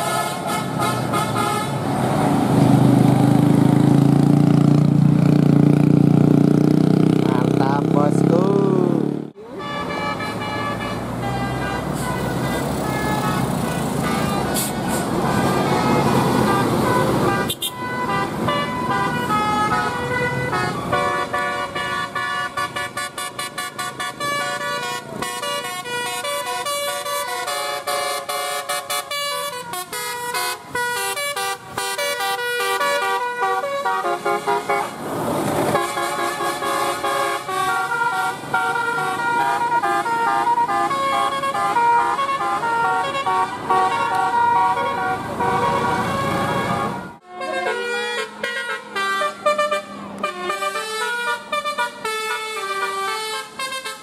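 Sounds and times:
bus air horns playing tune: 0.0s - 1.9s, 9.4s - 35.0s, 35.6s - 54.0s
bus engine passing: 0.0s - 54.0s
passing vehicle rush: 0.0s - 54.0s.

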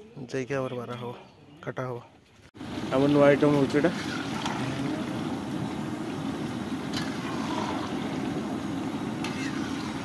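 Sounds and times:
gas burner roaring: 2.6s - 10.0s
oil bubbling: 2.6s - 10.0s.

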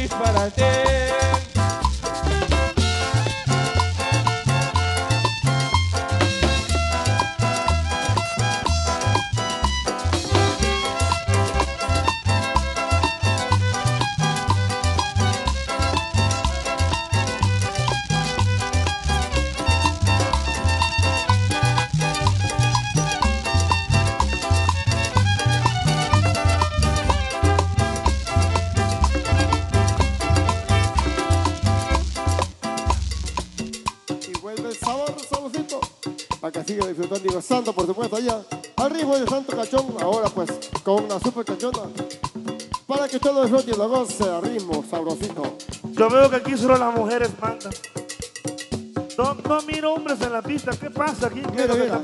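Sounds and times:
guitar: 0.0s - 52.0s
upright bass: 0.0s - 52.0s
bowed violin: 2.6s - 32.2s.

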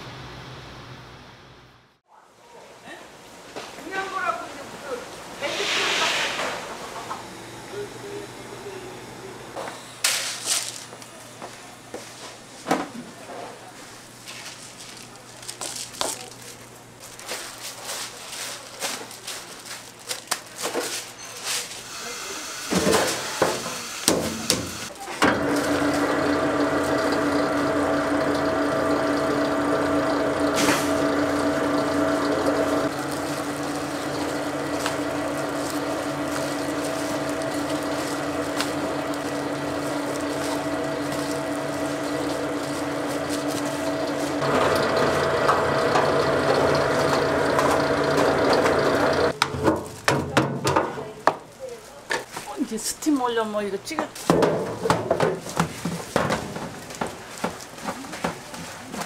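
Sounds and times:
electric mill humming: 6.6s - 10.0s, 21.8s - 49.4s.

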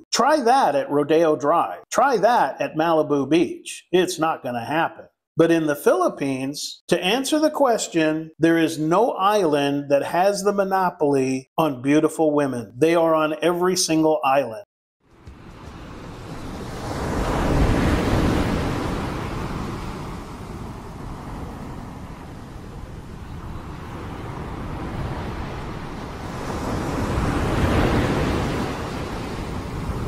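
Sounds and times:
ocean waves washing in: 15.1s - 30.0s.

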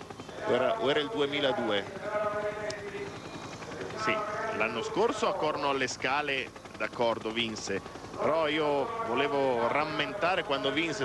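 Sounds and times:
man's drawn-out hesitation sound: 0.2s - 11.0s.

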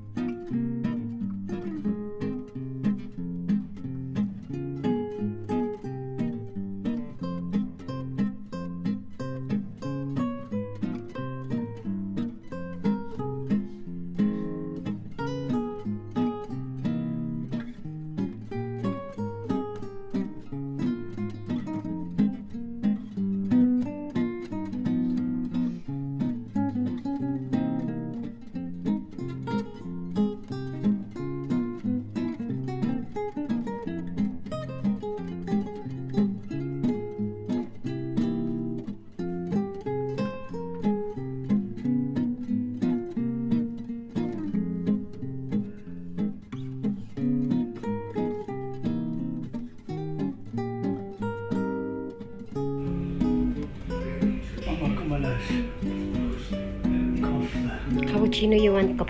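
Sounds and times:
acoustic guitar music: 0.0s - 59.0s.

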